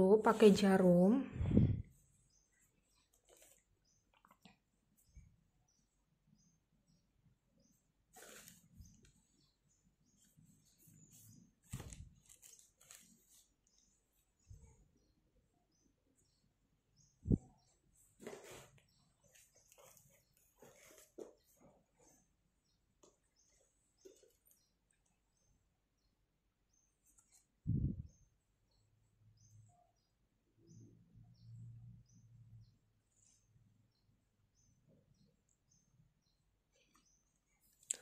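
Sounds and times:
fabric rustling: 0:02.0 - 0:04.4, 0:08.1 - 0:09.1, 0:10.2 - 0:13.8, 0:18.0 - 0:22.2.

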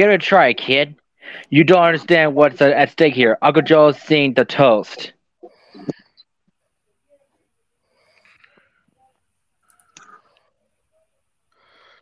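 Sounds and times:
faint breathing: 0:01.2 - 0:01.6, 0:07.1 - 0:09.2, 0:09.9 - 0:12.0.

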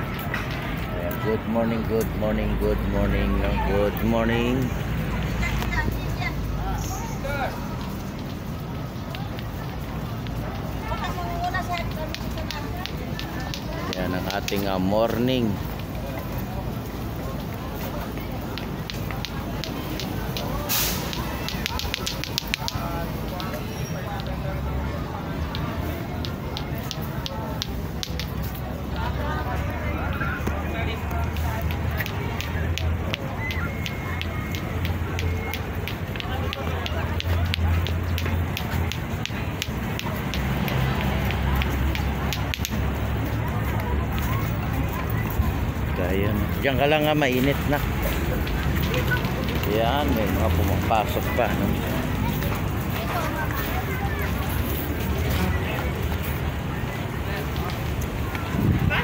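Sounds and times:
crowd chatter: 0:00.0 - 0:59.0
passers-by voices: 0:00.0 - 0:59.0
wind buffeting microphone: 0:56.5 - 0:59.0.

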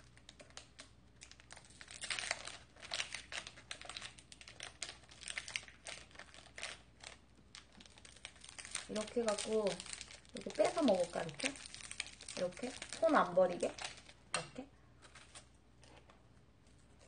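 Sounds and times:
packaging packet crinkling: 0:00.0 - 0:17.0.

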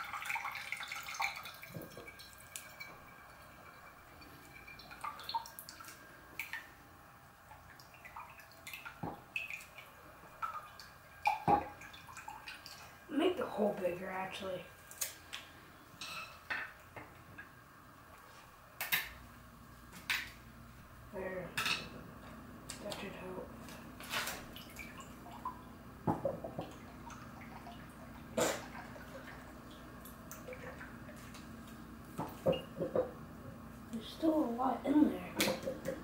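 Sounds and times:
low steady hum: 0:00.0 - 0:36.0.

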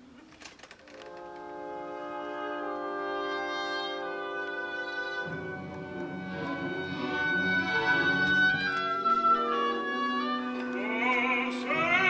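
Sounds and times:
brass holding a chord: 0:01.0 - 0:12.0.

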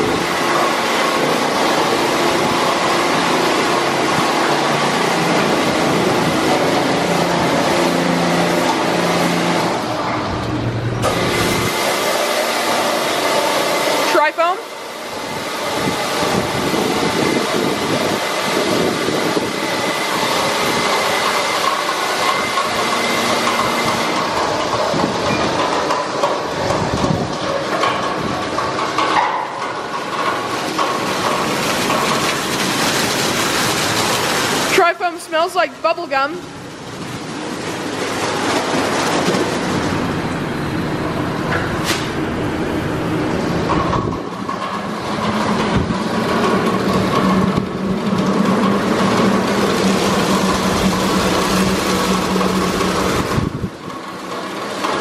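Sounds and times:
machine hum with faint whine: 0:00.0 - 0:55.0
spraying water: 0:00.0 - 0:55.0
rotating brushes scrubbing car: 0:11.0 - 0:25.2, 0:44.9 - 0:55.0.

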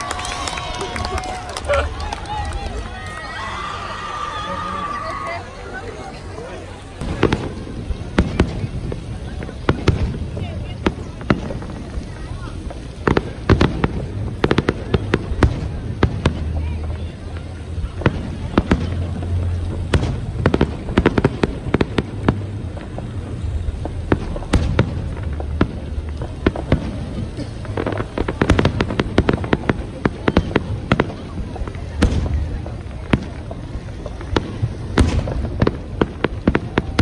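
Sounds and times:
fireworks bangs: 0:00.0 - 0:37.0
low rumble: 0:06.3 - 0:37.0.

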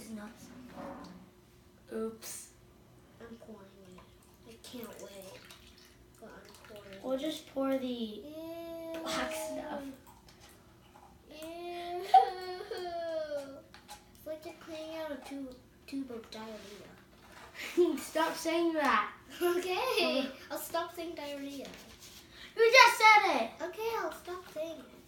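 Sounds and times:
child wavering vocal sounds: 0:08.3 - 0:10.0, 0:11.3 - 0:13.7.

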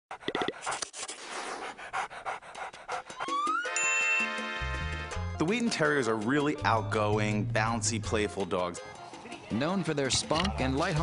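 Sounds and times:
dog panting: 0:00.1 - 0:03.6
music with rising tone: 0:02.6 - 0:10.0.

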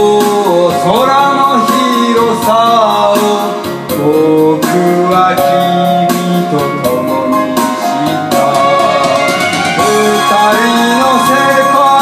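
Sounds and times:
man singing karaoke: 0:00.0 - 0:12.0
recorded backing track: 0:00.0 - 0:12.0.

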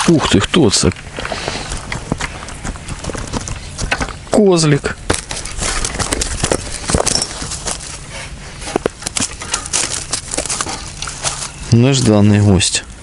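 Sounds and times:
fish thrashing in dry grass: 0:05.0 - 0:12.1.

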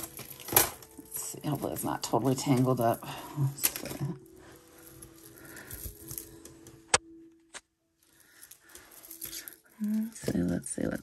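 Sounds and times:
metal chains rustling: 0:00.0 - 0:06.6, 0:08.0 - 0:11.0.

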